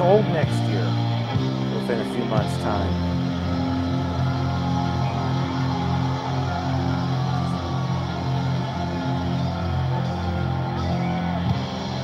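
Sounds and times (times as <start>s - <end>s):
concert music through television speaker: 0.0s - 12.0s.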